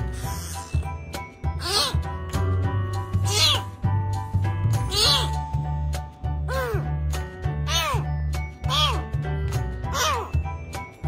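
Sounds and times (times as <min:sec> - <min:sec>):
background music: 0:00.0 - 0:11.0
kitten meowing: 0:03.2 - 0:03.7, 0:04.9 - 0:05.4, 0:07.7 - 0:09.1.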